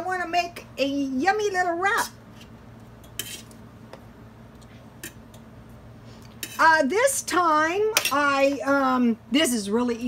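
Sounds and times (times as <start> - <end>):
fork scraping metal pan: 3.2 - 3.6, 6.4 - 6.7.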